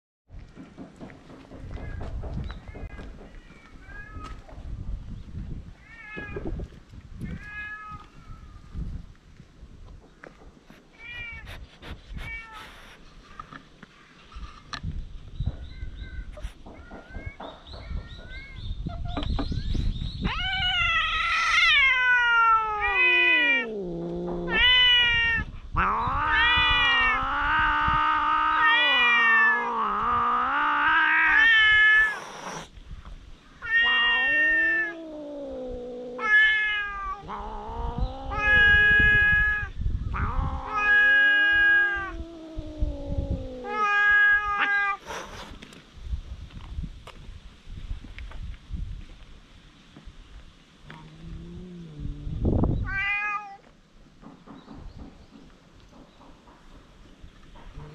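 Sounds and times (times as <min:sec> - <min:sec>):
cats yowling in a fight: 0:20.2 - 0:32.7, 0:33.6 - 0:45.0.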